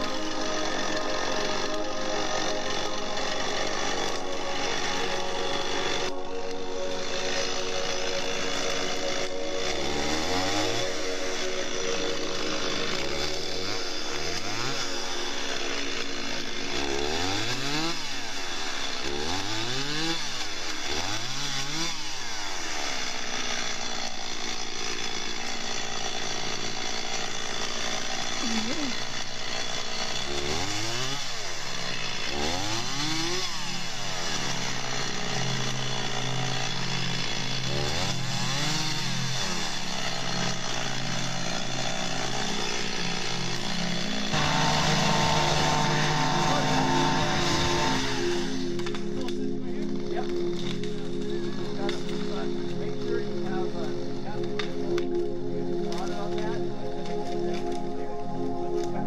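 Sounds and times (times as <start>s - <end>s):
chainsaw idling and revving: 0.0s - 59.0s.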